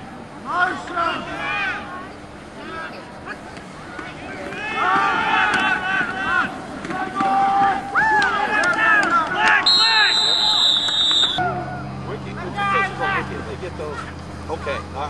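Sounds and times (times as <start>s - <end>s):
crowd shouting and cheering: 0.0s - 13.5s
referee's whistle: 9.6s - 11.4s.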